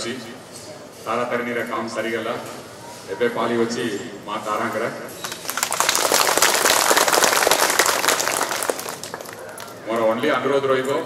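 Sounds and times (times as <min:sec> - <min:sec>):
audience applause: 0:05.2 - 0:09.8.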